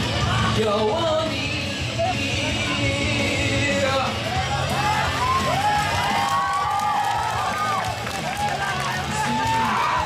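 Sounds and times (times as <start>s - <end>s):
crowd noise in a large hall: 0.0s - 10.0s
karaoke backing track: 0.0s - 10.0s.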